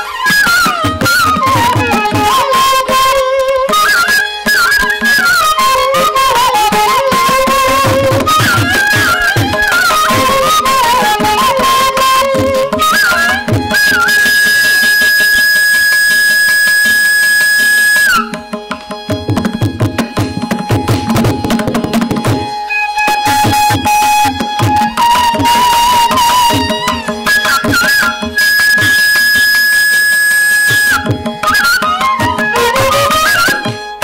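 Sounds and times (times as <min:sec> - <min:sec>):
bamboo flute long high note: 0:00.0 - 0:18.4, 0:22.7 - 0:33.7.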